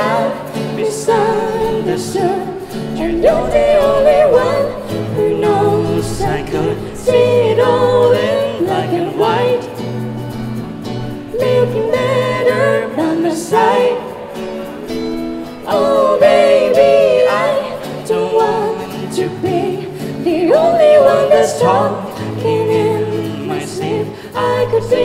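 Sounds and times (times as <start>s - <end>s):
woman singing slow song: 0.0s - 10.0s, 11.3s - 14.5s, 15.2s - 25.0s
acoustic guitar chords: 0.0s - 25.0s.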